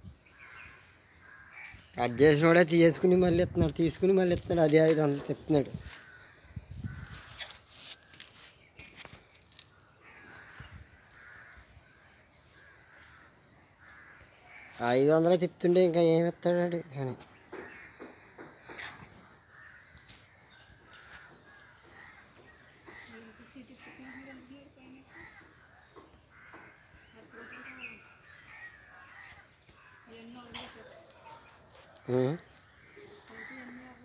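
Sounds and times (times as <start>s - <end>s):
crows cawing: 0.3s - 2.7s, 5.0s - 34.0s.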